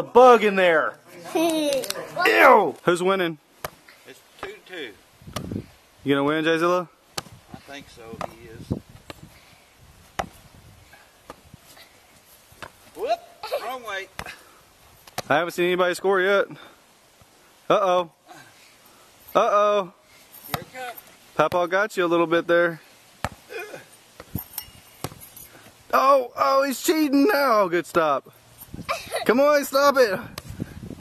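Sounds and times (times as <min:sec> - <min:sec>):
hand slapping tetherball: 0:03.6 - 0:04.7, 0:05.3 - 0:05.6, 0:07.1 - 0:09.3, 0:10.1 - 0:10.4, 0:30.2 - 0:31.0
tetherball hitting pole: 0:05.3 - 0:05.6, 0:07.1 - 0:07.4, 0:08.0 - 0:09.2, 0:10.1 - 0:10.4, 0:23.2 - 0:23.5, 0:24.2 - 0:25.3.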